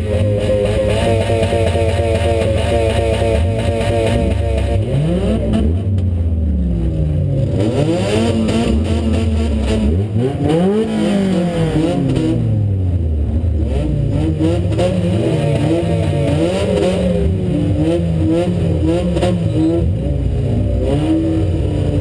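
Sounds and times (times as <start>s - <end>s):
car engine revving: 0.0s - 22.0s.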